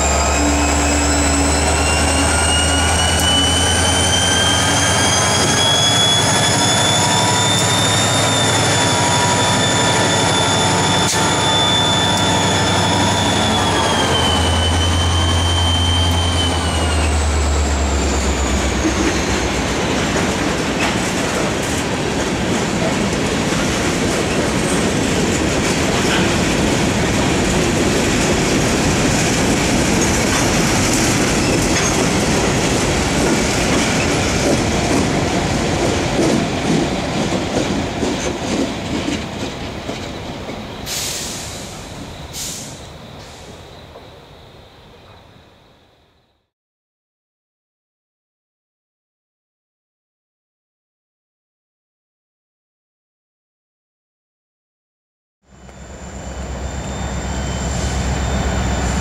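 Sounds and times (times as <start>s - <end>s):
diesel locomotive whine and hum: 0.0s - 45.7s, 55.5s - 59.0s
freight cars rumbling and rattling: 16.7s - 40.8s.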